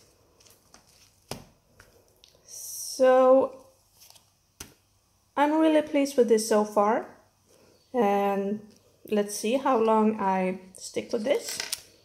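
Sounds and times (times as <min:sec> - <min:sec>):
planner pages turning: 0:00.0 - 0:02.0, 0:04.0 - 0:04.8.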